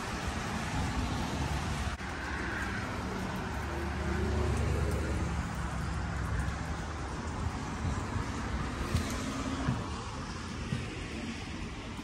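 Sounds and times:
passing cars rumble: 0.0s - 12.0s.

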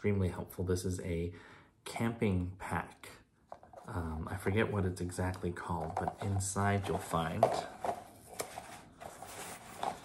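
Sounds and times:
plastic containers knocking: 5.3s - 8.1s.

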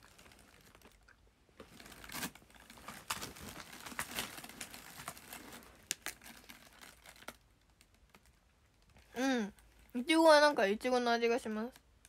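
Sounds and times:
crinkling and clicks from handling: 0.0s - 9.9s.

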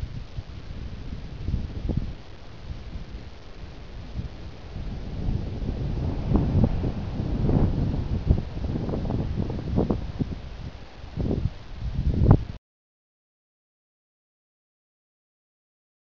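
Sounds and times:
wind rumbling on microphone: 0.0s - 12.6s.

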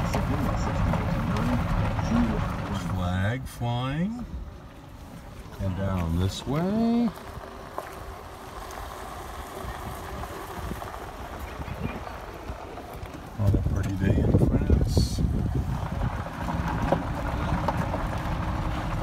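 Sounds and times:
tyres rumbling on gravel: 0.0s - 19.0s
wind buffeting microphone: 7.2s - 19.0s.

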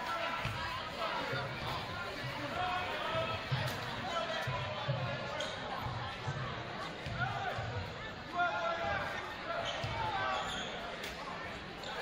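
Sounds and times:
voices echoing: 0.0s - 12.0s.

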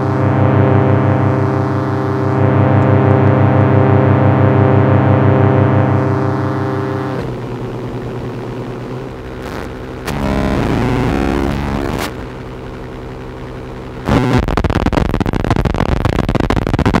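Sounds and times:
distorted wavering keyboard tone: 0.0s - 17.0s
keyboard crackling noise: 9.4s - 13.0s, 13.6s - 17.0s.

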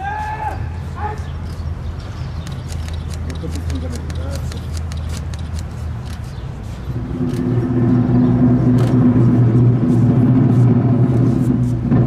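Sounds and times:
sharp clicks: 2.3s - 6.4s
low drum roll: 7.0s - 12.0s.

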